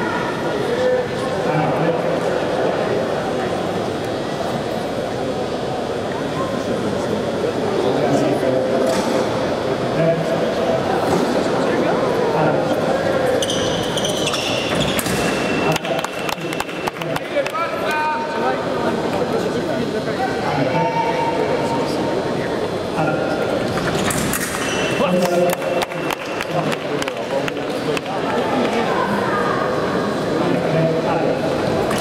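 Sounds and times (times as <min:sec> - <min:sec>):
voices in a large hall: 0:00.0 - 0:32.0.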